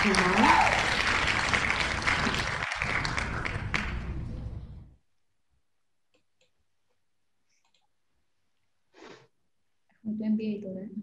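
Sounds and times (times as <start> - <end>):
applause: 0.0 - 4.4.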